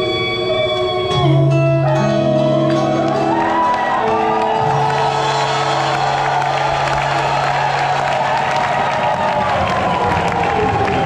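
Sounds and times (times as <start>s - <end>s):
rock band guitars and bass: 0.0s - 8.1s
crowd cheering: 2.4s - 11.0s.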